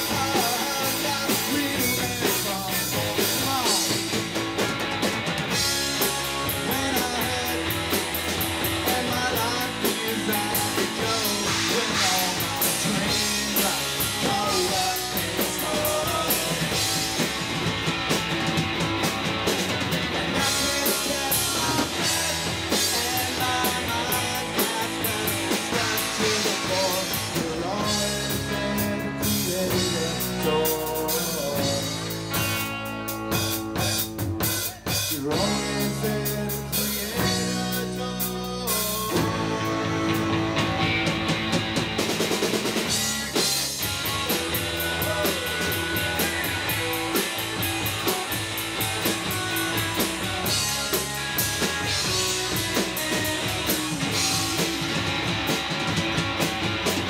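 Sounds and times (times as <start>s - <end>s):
drum kit: 0.0s - 57.0s
electric bass: 0.0s - 57.0s
electric guitars: 0.0s - 57.0s.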